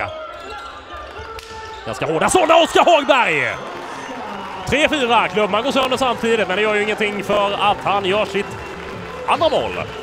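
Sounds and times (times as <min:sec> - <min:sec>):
murmur of hall and crowd: 0:00.0 - 0:10.0.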